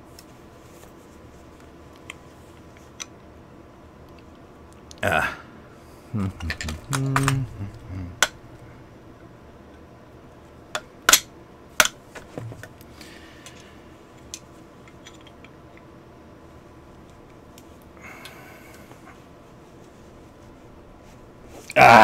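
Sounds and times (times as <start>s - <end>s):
strained grunt: 5.0s - 6.6s, 7.2s - 8.2s, 21.7s - 22.0s.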